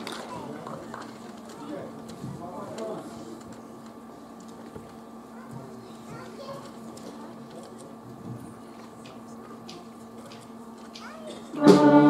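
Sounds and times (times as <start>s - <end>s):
murmur of voices chattering: 0.0s - 12.0s.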